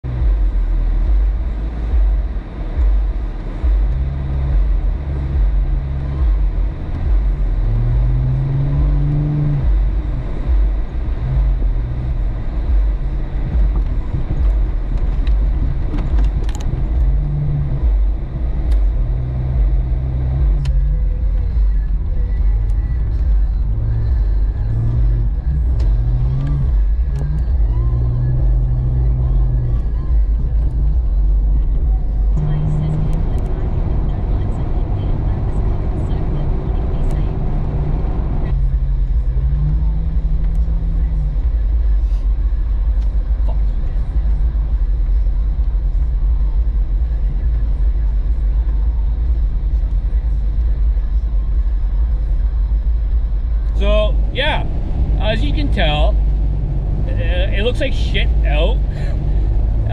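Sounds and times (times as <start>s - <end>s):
car engine accelerating: 0.0s - 59.9s
road noise inside car: 0.0s - 59.9s.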